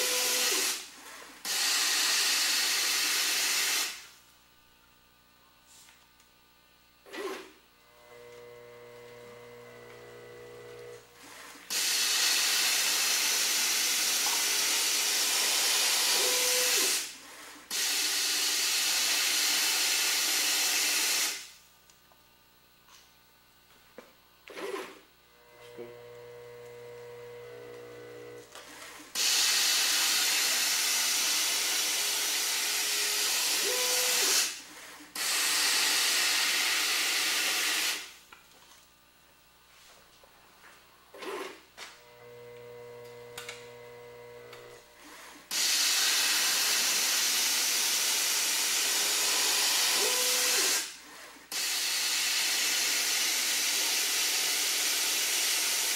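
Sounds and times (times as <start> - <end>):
motor hum: 4.4 - 17.7, 21.8 - 36.6, 40.2 - 45.5.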